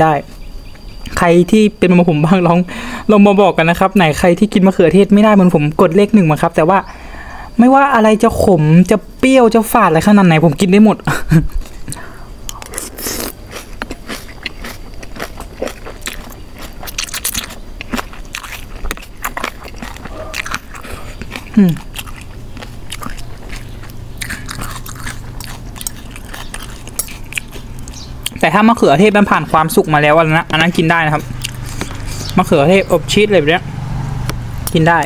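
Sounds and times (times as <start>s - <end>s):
sharp crunches of eating: 9.6s - 35.0s
wet chewing: 11.5s - 33.0s.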